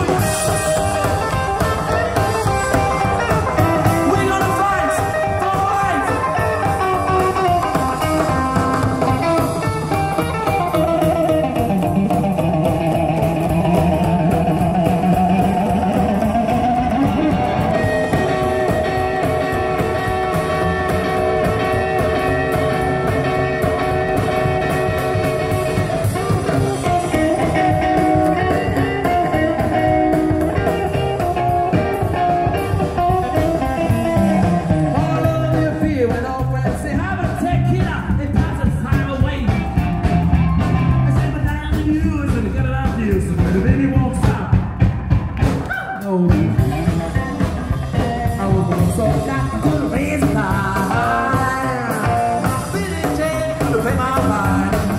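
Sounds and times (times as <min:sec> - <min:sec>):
upright double bass: 0:00.0 - 0:45.7, 0:46.3 - 0:54.9
drums: 0:00.0 - 0:54.9
electric guitar lead: 0:00.0 - 0:54.9.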